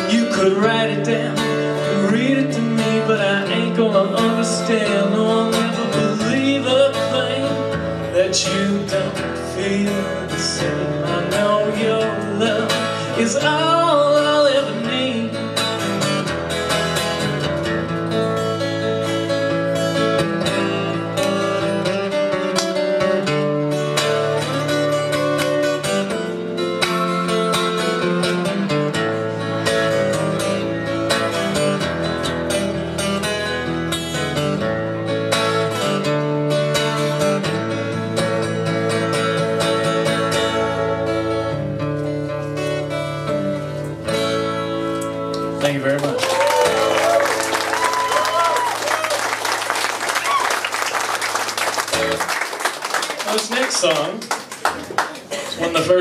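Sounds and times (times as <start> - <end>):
acoustic guitar strumming: 0.0 - 46.0, 50.8 - 52.3.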